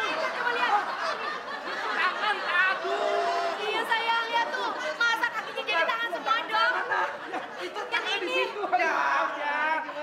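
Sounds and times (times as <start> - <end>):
people yelling and crying out: 0.0 - 7.1.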